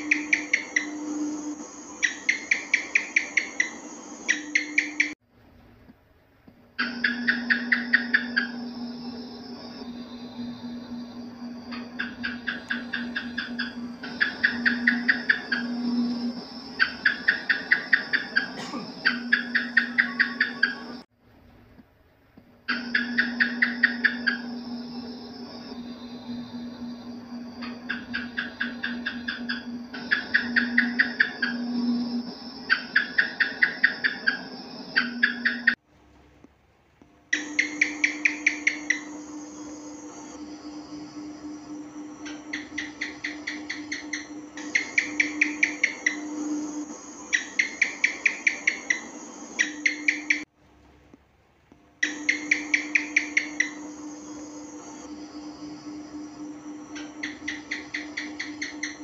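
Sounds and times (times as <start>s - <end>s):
gecko chirping clicks: 0.0s - 1.0s, 2.0s - 5.2s, 6.8s - 8.6s, 11.7s - 21.0s, 22.7s - 35.8s, 37.3s - 41.1s, 42.2s - 50.4s, 52.0s - 59.0s
steady low hum: 0.0s - 59.0s.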